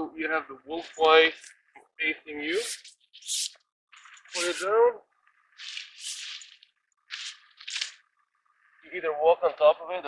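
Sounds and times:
nylon fabric rustling: 5.4 - 8.0.

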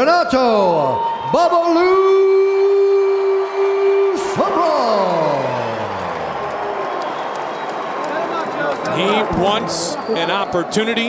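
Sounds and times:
crowd cheering and applauding: 0.8 - 11.0.

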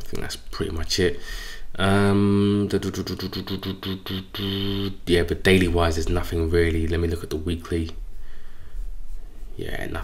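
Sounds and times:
man making hesitation sounds: 1.8 - 7.1.

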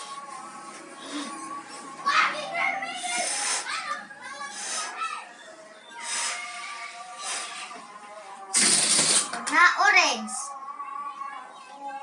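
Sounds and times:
child's voice: 1.8 - 5.4, 9.4 - 11.7.

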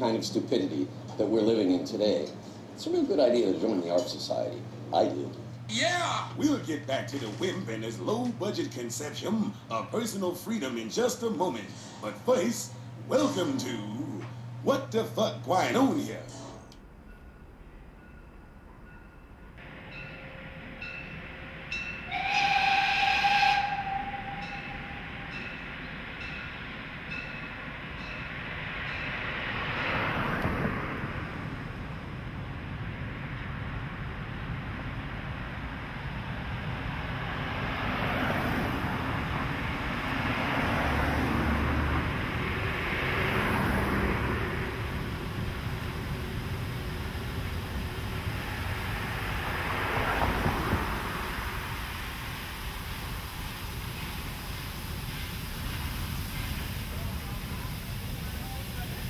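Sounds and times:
steam train rumble and hiss: 0.0 - 16.6, 19.6 - 59.0
steam locomotive whistle: 19.9 - 26.4
cars passing by: 25.6 - 54.0.

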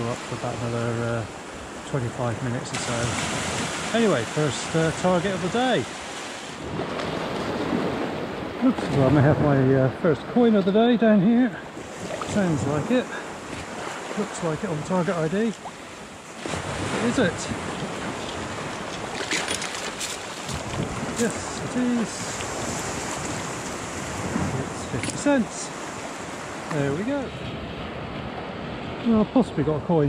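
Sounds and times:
sea surf washing over sand: 0.0 - 30.0
sea water swirling around legs: 11.8 - 12.8, 15.6 - 21.3.

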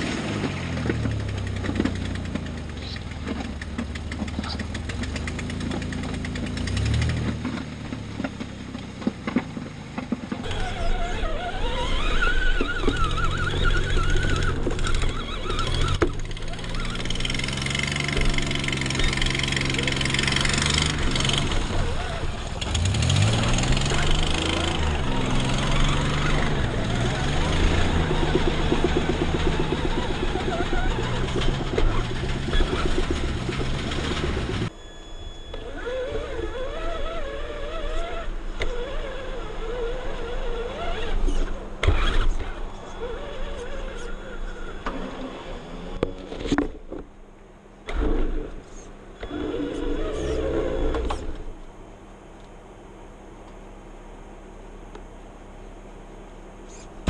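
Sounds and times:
tyres driving over mud and grass: 0.0 - 34.7
radio-controlled truck motor: 10.4 - 46.3.

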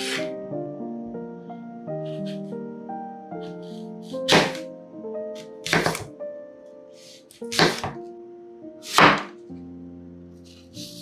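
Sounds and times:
soft background music: 0.0 - 11.0
knife chopping on wooden board: 4.3 - 4.6, 5.6 - 6.1, 7.5 - 8.0, 8.9 - 9.3.

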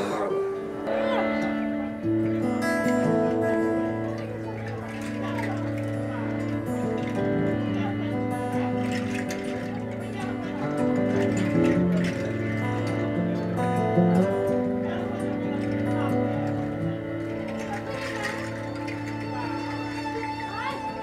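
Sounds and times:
acoustic guitar: 0.0 - 21.0.

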